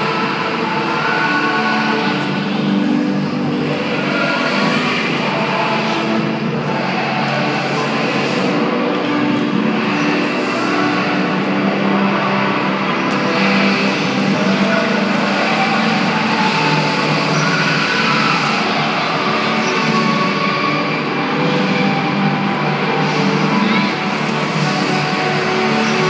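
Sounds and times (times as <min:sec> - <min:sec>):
music playing: 0:00.0 - 0:26.0.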